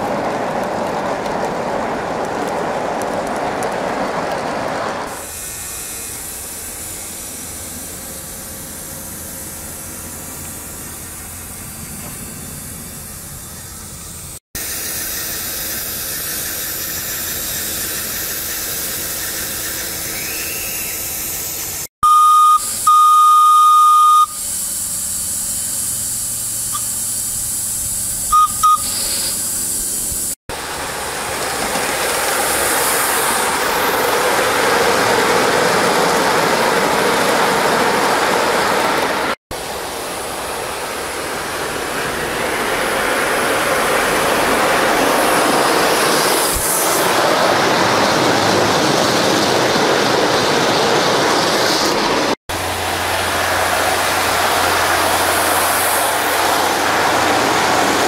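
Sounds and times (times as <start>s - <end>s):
steam hissing: 5.1s - 21.9s, 22.5s - 58.0s
locomotive whistle: 19.2s - 21.2s, 22.0s - 24.4s, 28.3s - 29.1s.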